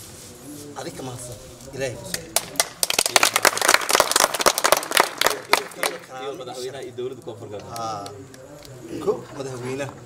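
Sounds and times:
voices: 0.2 - 10.0
hands clapping: 2.1 - 6.1, 7.5 - 8.8.

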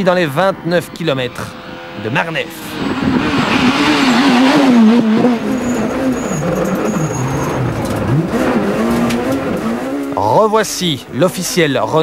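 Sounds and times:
rally car engine revving: 0.1 - 10.3.

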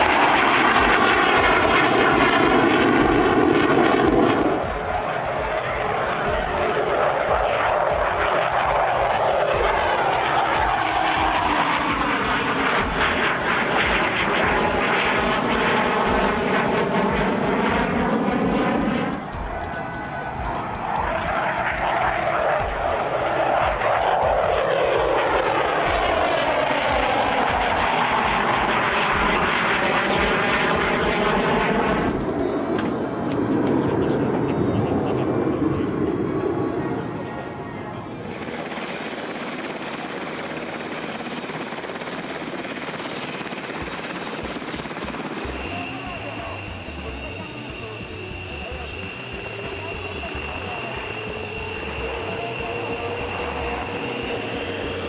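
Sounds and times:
jet fighter flying past: 0.0 - 55.0.

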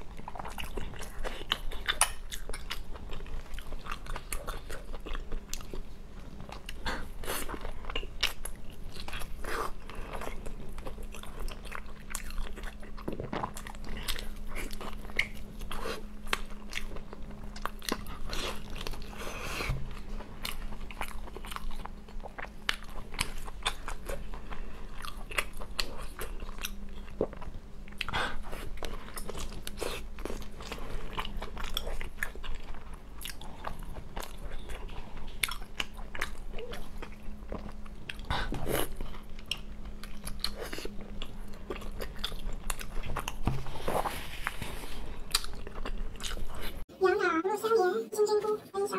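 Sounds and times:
biting and chewing food: 0.0 - 46.8
low electrical hum: 0.0 - 48.9.

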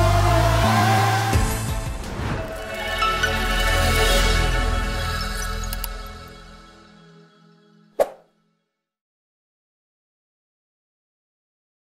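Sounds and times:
short pop sound effect: 8.0 - 8.2.

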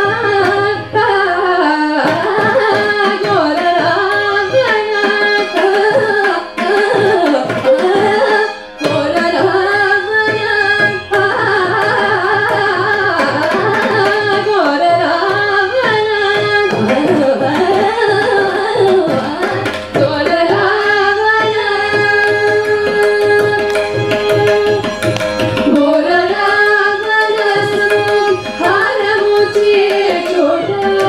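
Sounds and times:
women singing: 0.0 - 24.8, 25.6 - 31.0
violin: 0.0 - 31.0.

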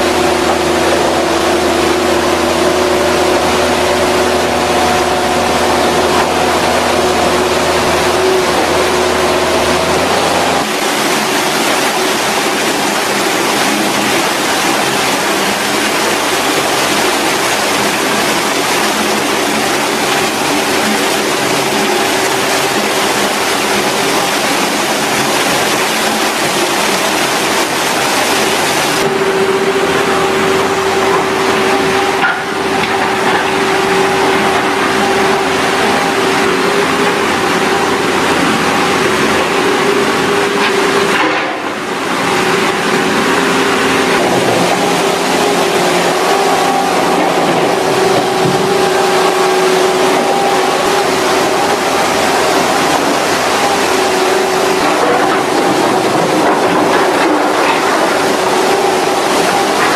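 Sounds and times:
dump truck engines running: 0.0 - 59.9.

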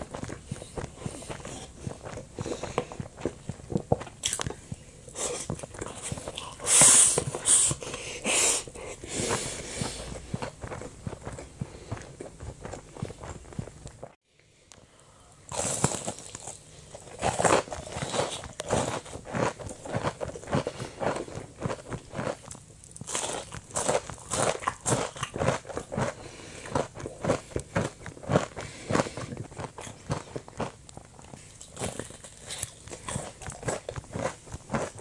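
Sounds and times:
crunching of crispy breading: 15.5 - 35.0.

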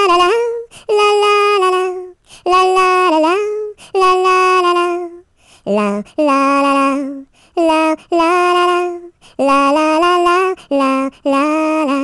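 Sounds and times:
high voice singing: 0.0 - 12.0
short breaths: 2.2 - 2.5, 5.3 - 5.7, 7.3 - 7.6, 9.2 - 9.4.

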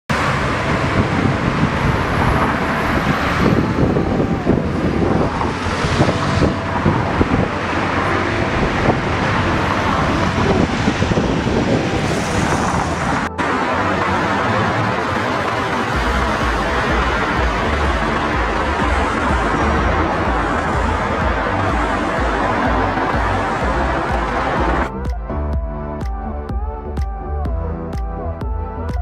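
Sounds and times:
vehicles passing on street: 0.1 - 29.0.

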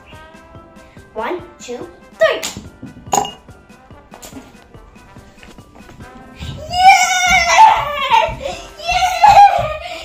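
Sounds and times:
pen clinking into glass: 3.1 - 3.4.

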